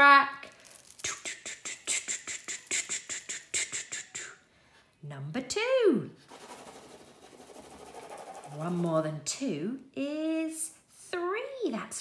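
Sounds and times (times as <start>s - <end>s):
fingertip scratching crackly foil: 6.3s - 8.9s.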